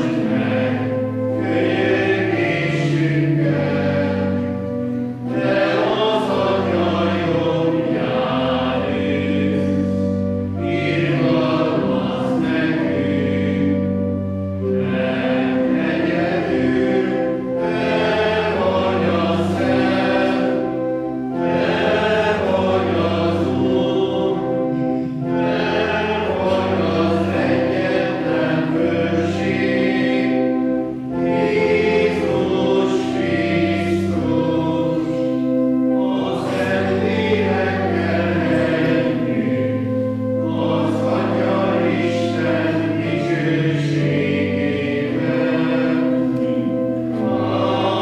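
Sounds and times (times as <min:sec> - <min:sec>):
congregation singing a hymn: 0:00.0 - 0:48.0.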